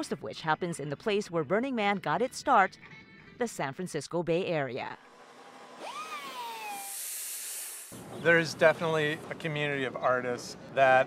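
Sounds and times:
angle grinder whine: 0:05.0 - 0:08.0
high grinding hiss: 0:05.0 - 0:08.1.

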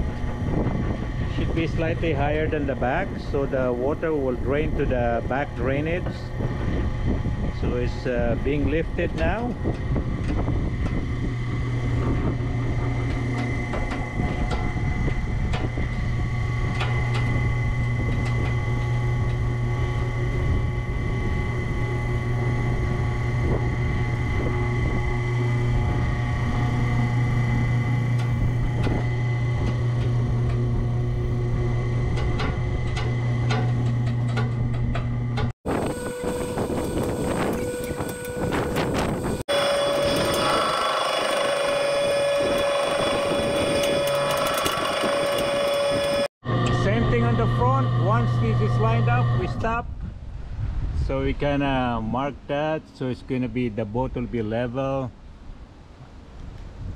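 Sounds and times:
winch motors humming: 0:00.0 - 0:49.9
mechanical hum with high tone: 0:00.0 - 0:56.9.

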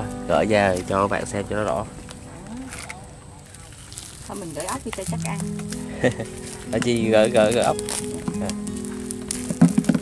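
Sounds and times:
low outdoor background: 0:00.0 - 0:10.0
net clicks and rustles: 0:02.6 - 0:10.0.

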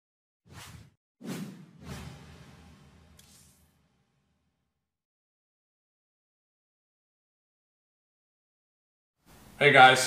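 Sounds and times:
whoosh sound effects: 0:00.5 - 0:03.8.

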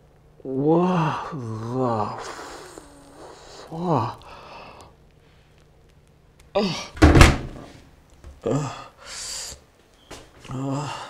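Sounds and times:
man groaning: 0:00.4 - 0:03.0, 0:03.6 - 0:04.2, 0:06.6 - 0:07.0, 0:08.4 - 0:09.0, 0:10.5 - 0:11.0.

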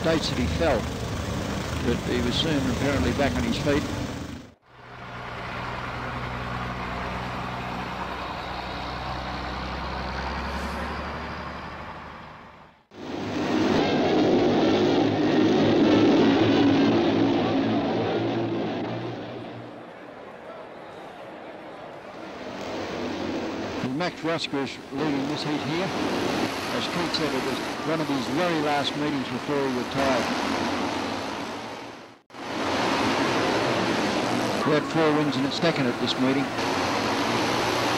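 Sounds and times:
motorcycle engine running: 0:00.0 - 0:04.6.

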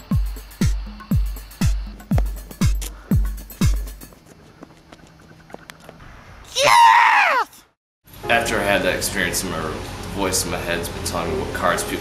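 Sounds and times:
person screaming: 0:06.5 - 0:07.7.

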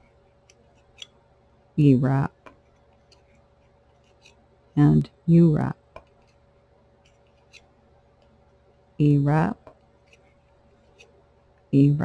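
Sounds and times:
person speaking: 0:01.8 - 0:02.4, 0:04.8 - 0:05.8, 0:09.0 - 0:09.7, 0:11.7 - 0:12.0.

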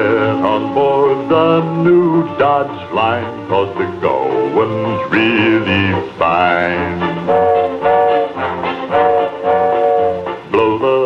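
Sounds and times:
brass section playing held chords: 0:00.0 - 0:11.0.

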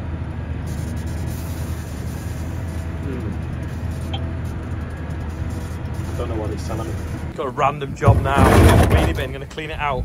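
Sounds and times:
tractor engine droning: 0:00.0 - 0:10.0.

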